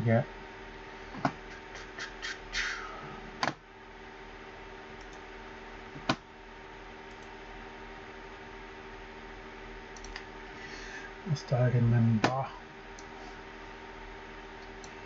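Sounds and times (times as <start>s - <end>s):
electric desk fan running: 0.0s - 15.0s
sharp clicks: 10.0s - 10.3s.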